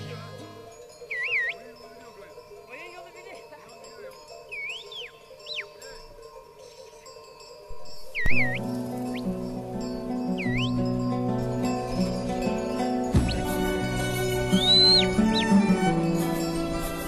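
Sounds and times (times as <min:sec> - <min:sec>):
high wavering whistles: 0:01.0 - 0:01.7, 0:04.5 - 0:05.9, 0:07.7 - 0:11.1, 0:11.9 - 0:16.6
soft background music: 0:07.9 - 0:17.0.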